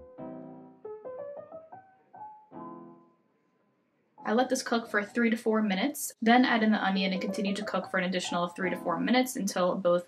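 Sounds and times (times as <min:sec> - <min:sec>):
soft piano chords and notes: 0:00.0 - 0:05.0.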